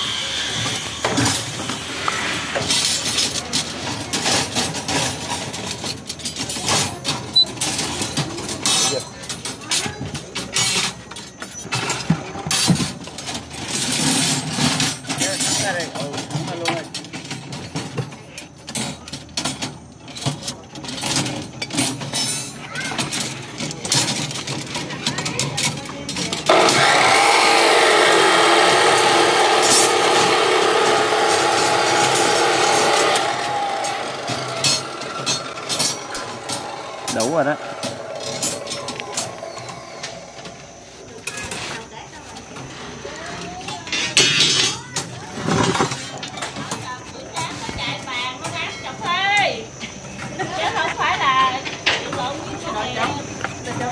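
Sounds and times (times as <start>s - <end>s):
loud steady humming noise: 26.3s - 41.1s.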